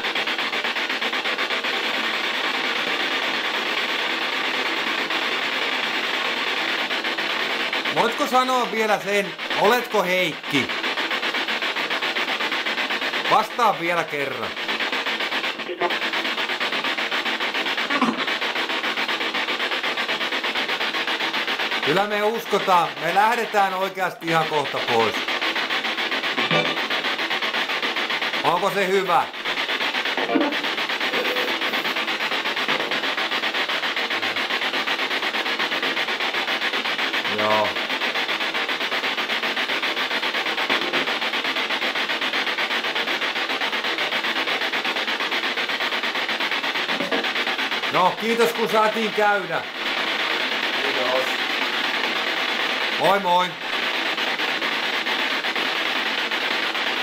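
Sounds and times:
chopped radio static hiss: 0.0 - 57.0
pulsing rasping noise: 0.0 - 57.0.

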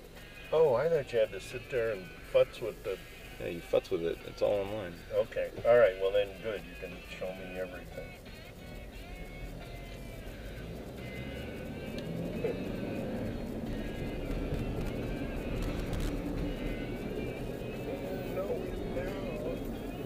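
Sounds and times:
car engine and road rumble: 0.0 - 20.0
music playing in car: 0.0 - 20.0.

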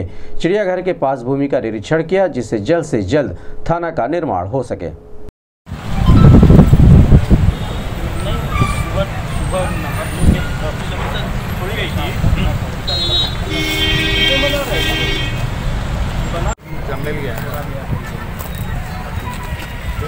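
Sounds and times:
road traffic: 5.1 - 20.0
vehicle horn: 12.8 - 15.5.

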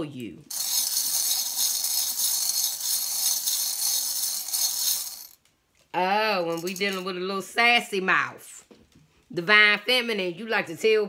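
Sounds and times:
small metal charms jingling: 0.5 - 5.4, 6.4 - 7.1.

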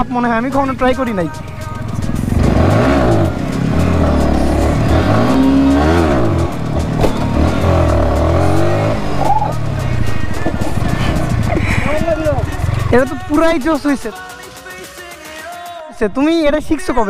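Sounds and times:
motorcycle engine revving: 0.4 - 14.1.

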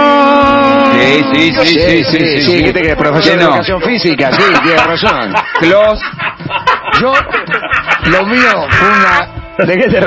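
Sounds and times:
cackling cartoon laugh: 4.4 - 9.0.

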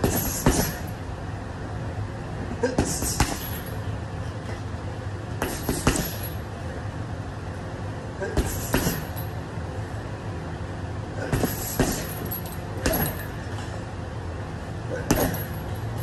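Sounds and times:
gloves punching a bag: 0.0 - 0.9, 2.6 - 3.7, 5.4 - 6.3, 8.2 - 9.2, 11.2 - 13.4, 14.9 - 15.7
steady low hum: 0.0 - 16.0
chains jangling: 12.0 - 13.3, 15.2 - 16.0.

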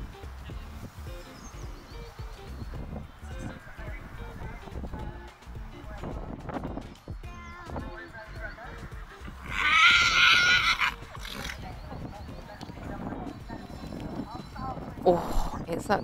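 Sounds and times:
horse whinnying: 9.1 - 11.7.

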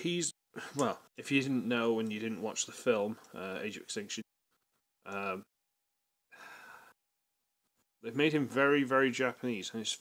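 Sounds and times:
man breathing: 6.3 - 7.0.

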